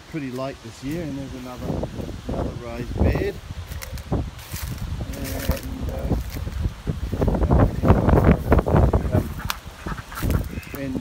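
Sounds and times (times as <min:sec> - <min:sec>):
wind buffeting microphone: 0:00.5 - 0:11.0.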